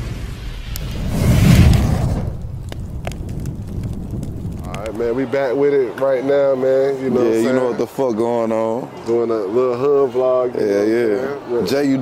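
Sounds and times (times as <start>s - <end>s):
low rumbling boom: 0.0s - 5.2s.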